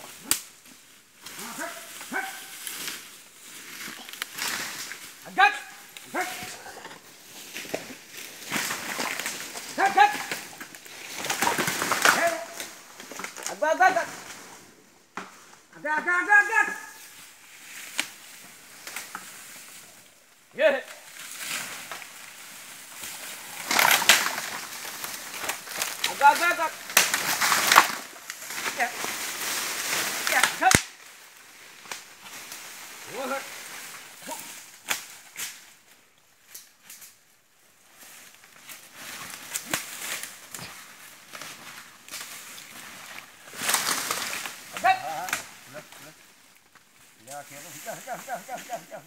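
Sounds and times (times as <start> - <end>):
branches snapping: 0.0 - 15.6, 16.6 - 20.0, 20.8 - 37.3, 37.9 - 47.2
dry bamboo and brush crunching: 0.0 - 49.0
person calling: 9.7 - 10.5
loud cracks: 23.6 - 28.8, 30.0 - 31.0.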